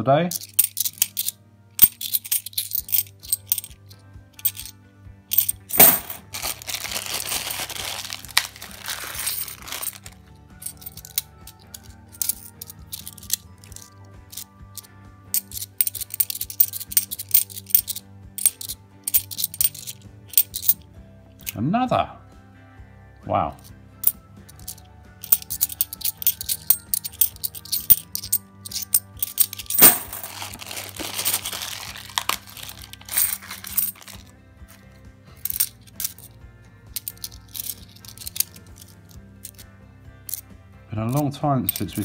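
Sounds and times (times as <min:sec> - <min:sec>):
background music: 0:00.0 - 0:42.0
coins clinking and sliding: 0:00.3 - 0:20.8, 0:24.0 - 0:36.3, 0:37.0 - 0:39.7, 0:41.7 - 0:42.0.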